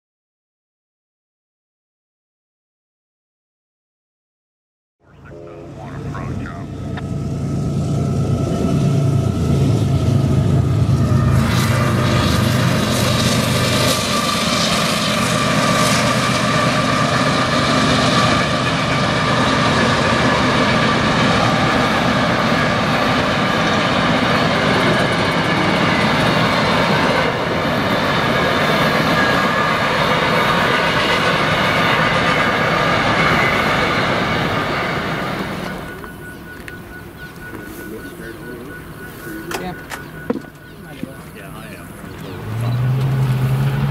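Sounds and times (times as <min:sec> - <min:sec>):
deep hum: 0:05.0 - 0:12.6
train wheels rumbling on rail: 0:06.9 - 0:43.9
high ringing tones: 0:33.2 - 0:42.3.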